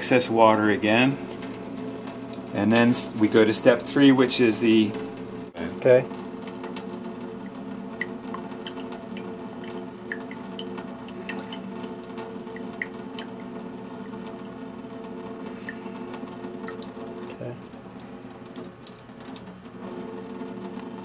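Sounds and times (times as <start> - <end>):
tap water running into sink: 0.0 - 21.0
water drips and splashes: 5.6 - 14.4, 16.4 - 19.5.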